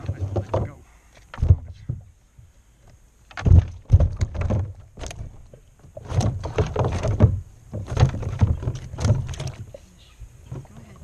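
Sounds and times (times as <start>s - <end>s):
fish thumping on kayak hull: 0.0s - 2.1s, 3.3s - 9.7s.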